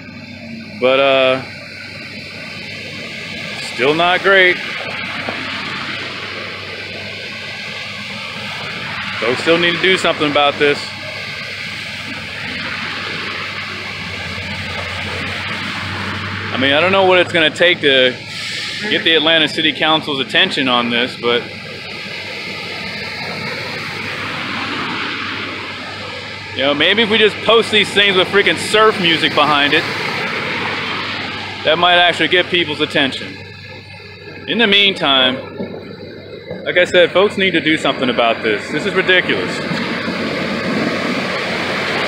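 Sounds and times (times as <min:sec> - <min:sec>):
car splashing through flood water: 0:00.0 - 0:42.0.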